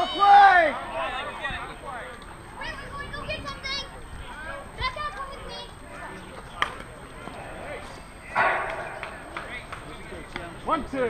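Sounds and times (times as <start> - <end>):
loud shout: 0.0 - 1.3
softball players calling out: 0.0 - 11.0.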